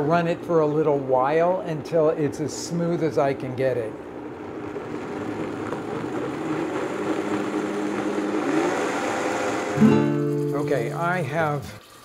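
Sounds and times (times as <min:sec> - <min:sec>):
blender motor running: 0:04.0 - 0:10.5
music: 0:09.8 - 0:11.1.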